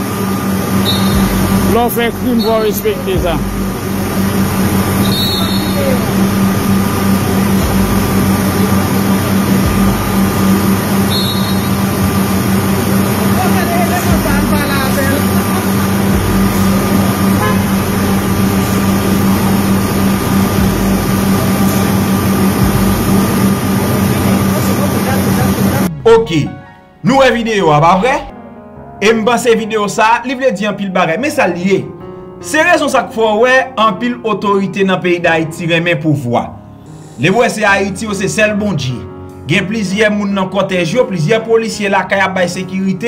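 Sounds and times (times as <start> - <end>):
vehicles idling and passing: 0.0 - 25.9
low hum: 0.0 - 26.0.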